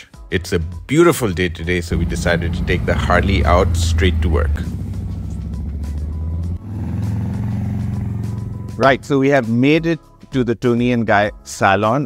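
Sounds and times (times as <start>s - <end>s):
music: 0.0s - 12.0s
motorcycle engine riding off: 1.8s - 9.4s.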